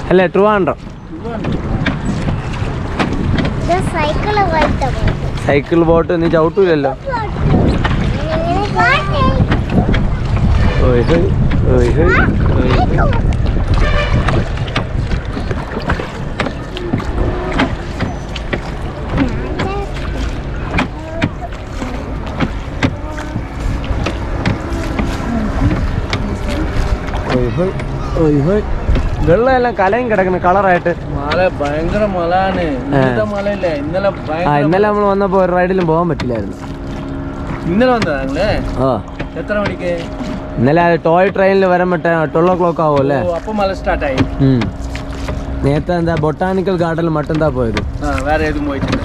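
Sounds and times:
water moving around hull: 0.0 - 49.0
wind rumble on microphone: 0.0 - 49.0
oars knocking in rowlocks: 0.3 - 49.0.

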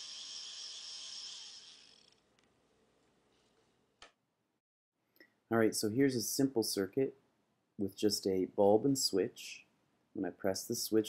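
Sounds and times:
small motor whining: 0.0 - 2.2.

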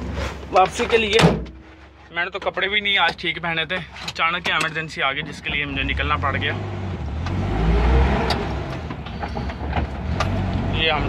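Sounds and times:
road noise: 0.0 - 11.0
engine rumble inside vehicle: 2.1 - 11.0.

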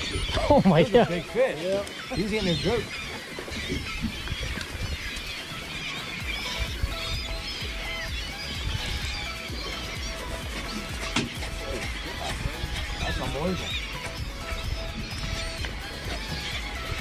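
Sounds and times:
gulls calling: 0.0 - 17.0
low wind rumble: 2.2 - 17.0.

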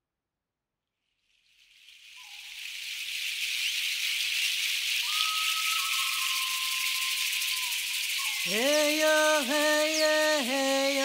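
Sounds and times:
hand rattle shaking: 1.7 - 11.0
whistle-like tones: 2.2 - 11.0.

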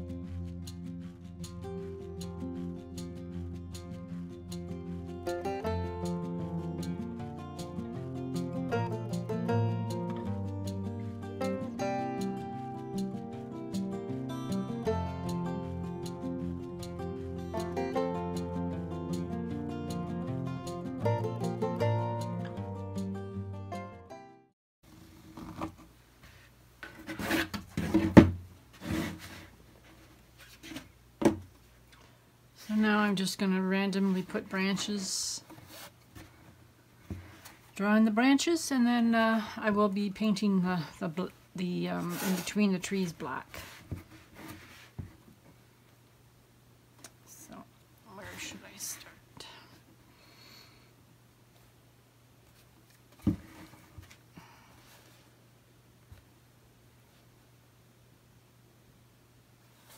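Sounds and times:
thump on tabletop: 31.2 - 31.5, 53.2 - 53.6.

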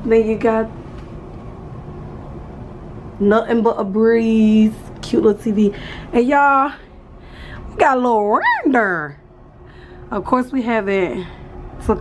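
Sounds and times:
steady hum and hiss: 0.0 - 12.0.

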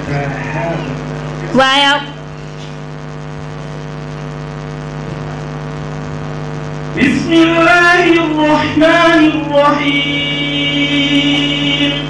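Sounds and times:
steady buzzy hum: 0.0 - 12.0.

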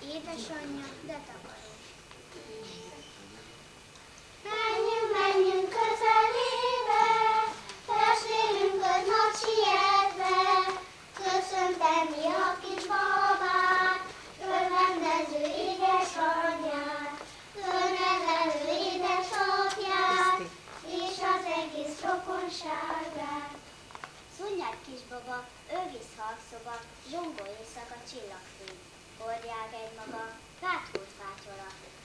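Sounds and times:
children singing: 4.4 - 23.6.

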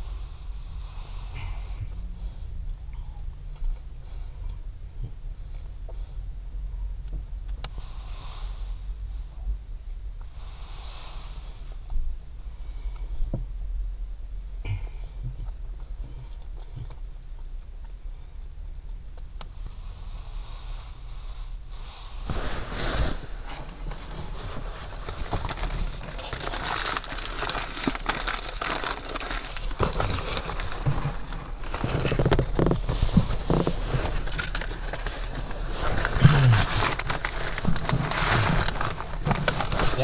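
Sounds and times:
steady low hum: 0.0 - 40.0
clothing fabric rustling on microphone: 21.8 - 40.0.

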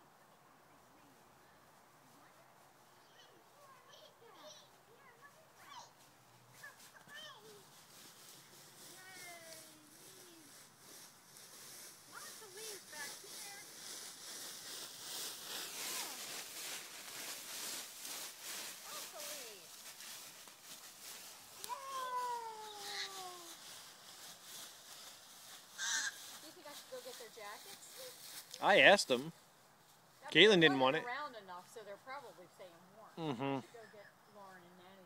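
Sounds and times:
footsteps in dry leaves: 1.6 - 32.5
loud rustle: 3.0 - 29.0
small child calling: 21.6 - 23.6, 25.8 - 26.2.

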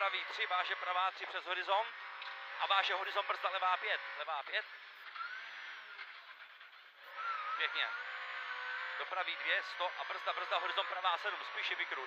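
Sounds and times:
rally car engine from cabin: 0.0 - 12.0.

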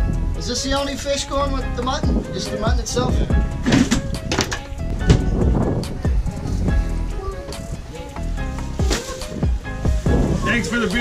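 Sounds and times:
music with sustained notes: 0.0 - 11.0.

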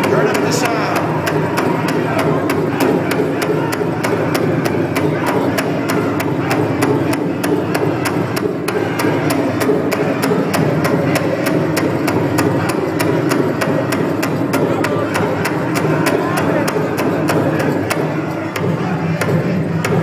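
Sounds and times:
drum struck in fast beat: 0.0 - 20.0.

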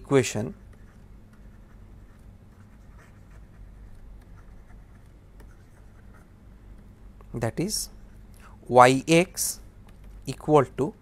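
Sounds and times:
low steady hum: 0.0 - 11.0
stylus scratching and tapping: 0.4 - 8.3, 9.8 - 10.3.

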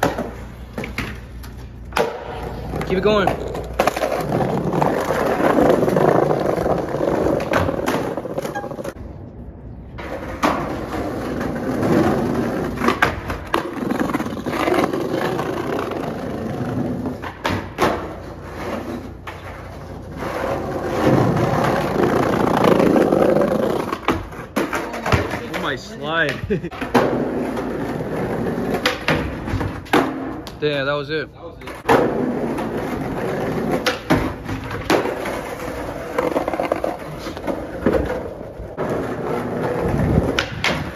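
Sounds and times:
skateboard clacks and knocks: 0.0 - 1.3, 1.9 - 9.0, 10.0 - 30.6, 31.6 - 40.9
skateboard wheels rolling on bricks: 0.0 - 30.6, 31.6 - 40.9.

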